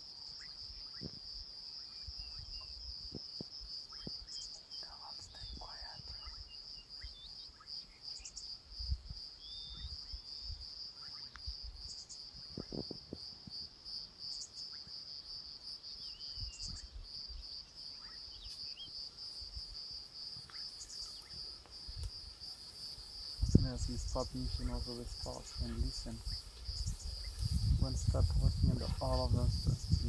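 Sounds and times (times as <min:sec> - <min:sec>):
crickets trilling: 0:00.0 - 0:30.0
faint bird chirps: 0:00.2 - 0:02.9, 0:03.8 - 0:08.6, 0:09.4 - 0:12.9, 0:15.9 - 0:19.0
low rumbles: 0:23.4 - 0:30.0.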